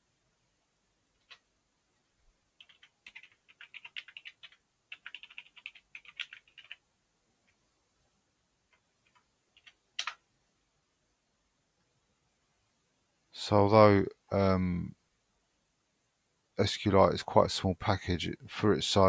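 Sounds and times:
typing on keyboard: 1.2s - 1.4s, 2.6s - 6.8s, 8.7s - 10.2s.

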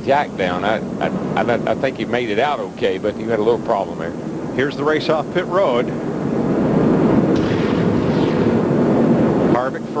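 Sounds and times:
many race car engines rumbling: 0.0s - 10.0s.

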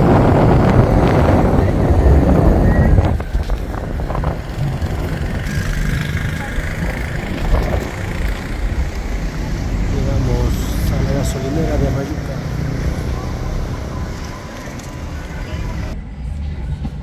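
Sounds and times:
wind buffeting microphone: 0.0s - 16.0s
road vehicle rumble: 0.0s - 17.0s.

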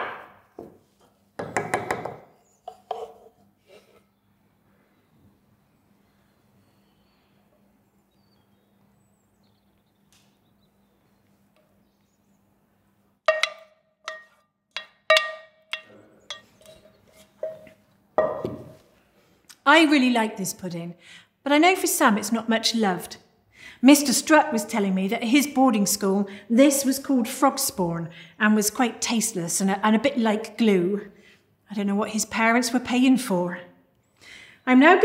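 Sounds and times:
wooden spoon scraping saucepan: 2.4s - 4.0s, 15.2s - 17.8s.

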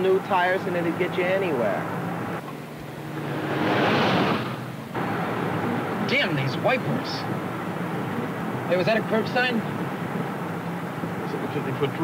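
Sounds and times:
low hum of car: 0.0s - 12.0s
car passing on wet road: 3.0s - 5.7s.

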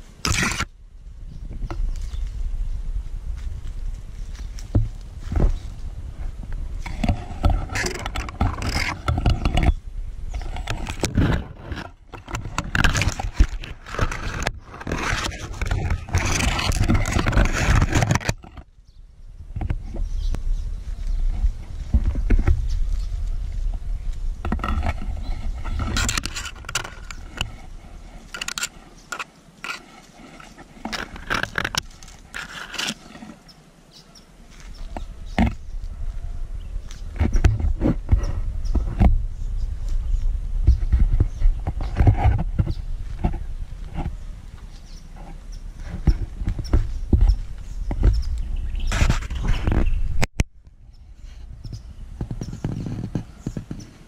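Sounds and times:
leaves and twigs rustling: 0.0s - 54.0s
wind rumbling on microphone: 0.0s - 54.0s.

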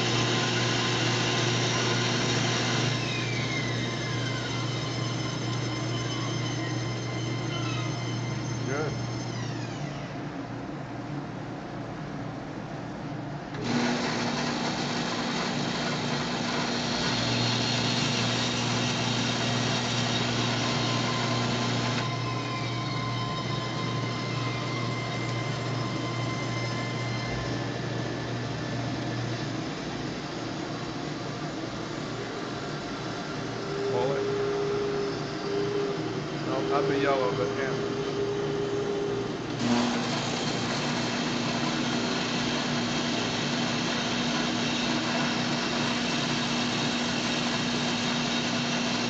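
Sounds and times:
band saw running: 0.0s - 10.1s, 13.6s - 31.3s, 32.1s - 49.0s
dust collector humming: 0.0s - 10.4s, 13.4s - 49.0s.

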